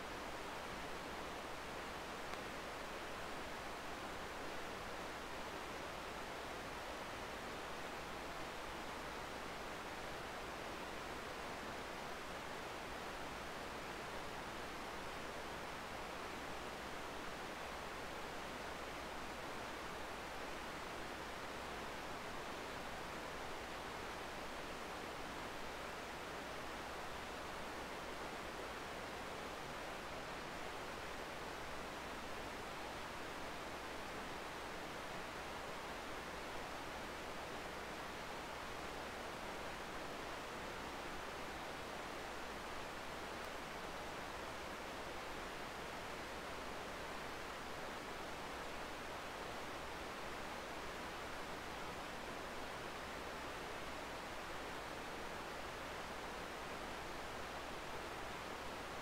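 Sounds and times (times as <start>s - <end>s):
steady hiss: 0.0s - 59.0s.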